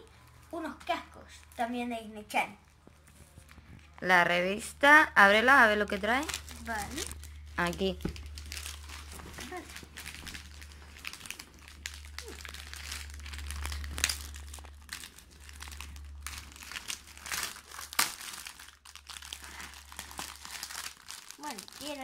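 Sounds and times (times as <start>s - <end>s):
plastic wrapping crinkling: 2.6s - 22.0s.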